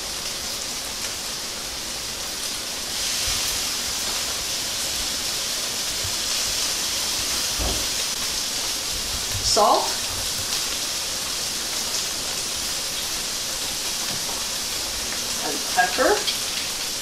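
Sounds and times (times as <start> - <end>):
vegetables sizzling in hot oil: 0.0 - 17.0.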